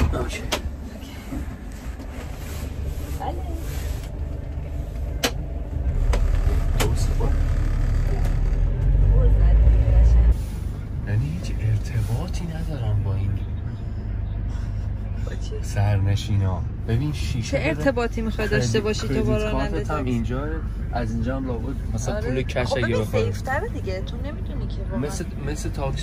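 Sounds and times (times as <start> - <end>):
car engine and road rumble: 0.0 - 26.0.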